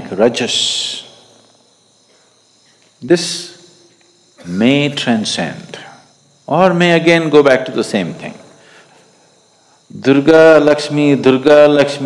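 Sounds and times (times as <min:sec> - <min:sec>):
crickets chirring: 0:00.0 - 0:12.0
person speaking: 0:04.4 - 0:08.5.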